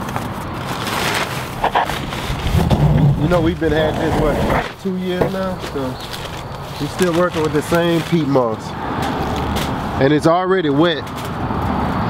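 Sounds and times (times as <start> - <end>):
plastic bag rustling and crinkling: 0.0 - 10.0.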